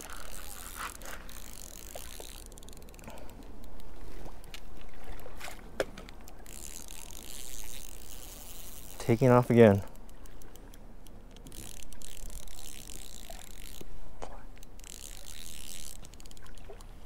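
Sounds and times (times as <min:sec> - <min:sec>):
fishing reel ticking rapidly: 0:00.0 - 0:04.5, 0:06.2 - 0:17.0.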